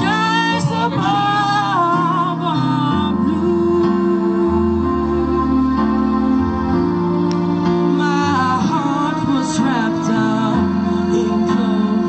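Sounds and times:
woman singing into microphone: 0:00.0 - 0:06.3, 0:07.9 - 0:12.0
sustained keyboard chords: 0:00.0 - 0:12.0.

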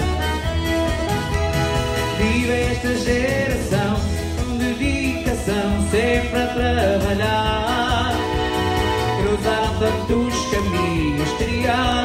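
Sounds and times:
button accordion melody: 0:00.0 - 0:12.0.

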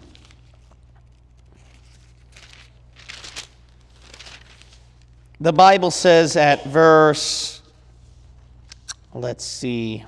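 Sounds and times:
book pages rustling: 0:00.0 - 0:05.2
steady low hum: 0:00.0 - 0:10.0.

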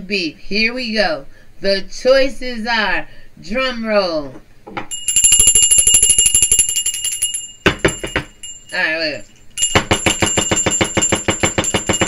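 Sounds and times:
metal bell rung in fast roll: 0:04.9 - 0:12.0.

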